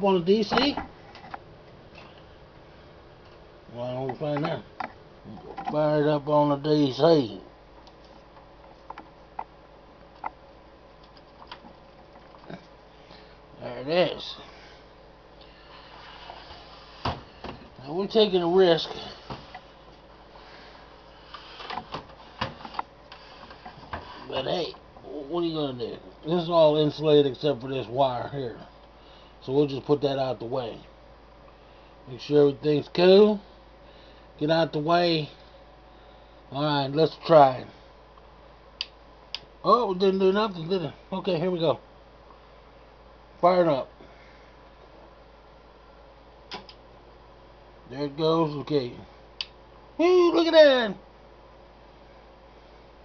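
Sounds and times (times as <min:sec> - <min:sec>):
faint low hum: 0:00.0 - 0:53.0.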